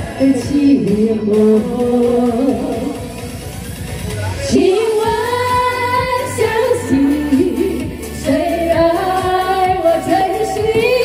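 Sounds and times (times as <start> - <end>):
women singing into microphones: 0.0 - 3.2, 4.5 - 11.0
amplified backing track: 0.0 - 11.0.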